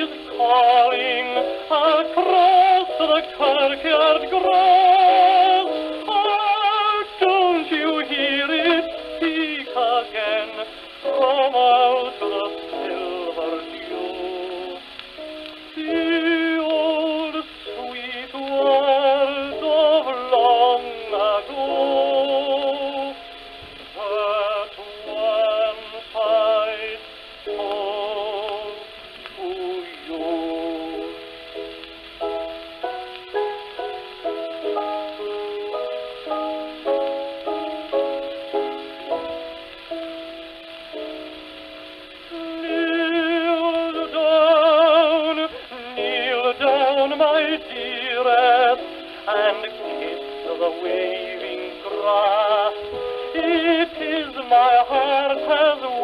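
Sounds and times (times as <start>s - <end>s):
piano accompaniment: 0.0s - 56.0s
tenor singing with vibrato: 0.0s - 56.0s.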